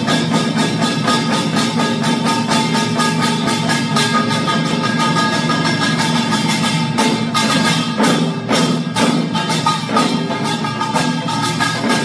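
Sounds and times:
barrel drums beating: 0.0s - 12.0s
hourglass drum strokes: 0.0s - 12.0s
ringing metal gongs: 0.0s - 12.0s.

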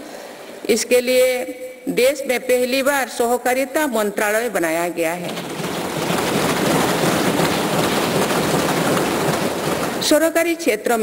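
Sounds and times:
hands thumping desks: 5.3s - 10.2s.

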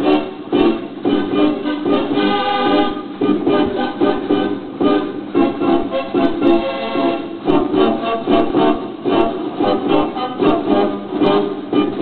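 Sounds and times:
dance organ music on loudspeakers: 0.0s - 12.0s.

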